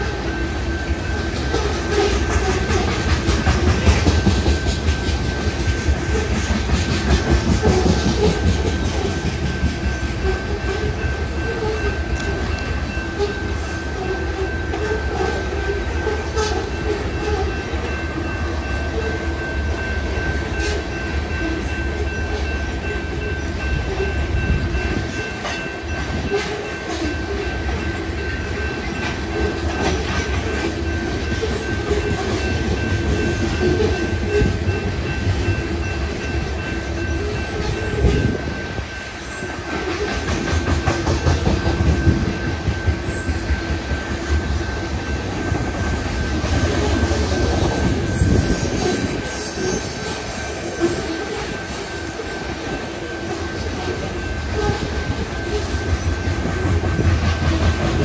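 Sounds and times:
train wheels rumbling on rails: 0.0s - 58.0s
wheels clicking over rail joints: 1.1s - 13.4s.

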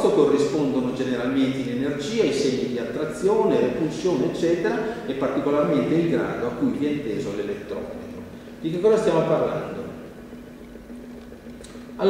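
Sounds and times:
low hum: 2.6s - 12.0s.

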